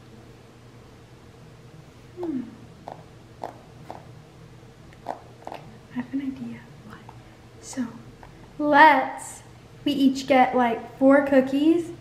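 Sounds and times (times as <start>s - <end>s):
woman humming low: 2.1s - 2.7s.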